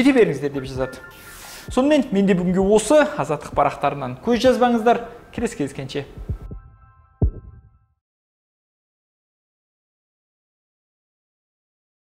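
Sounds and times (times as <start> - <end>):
faint background music: 0.0 - 7.0
deep boom sweeping down: 6.2 - 7.9.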